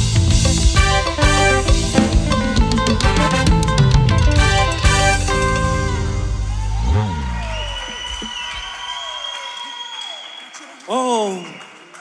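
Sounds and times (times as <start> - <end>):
held keyboard chord: 0.0 - 6.5
gospel band hit: 0.0 - 8.6
light applause: 6.4 - 12.0.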